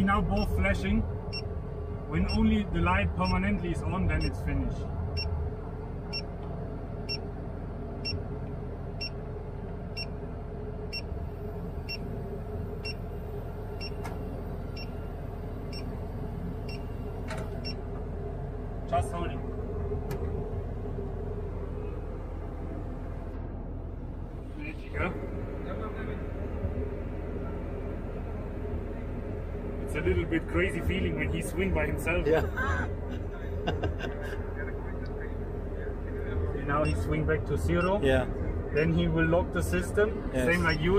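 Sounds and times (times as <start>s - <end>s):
crane diesel engine and hydraulics: 0.0s - 40.9s
electronic warning beeper chirping: 40.5s - 40.9s.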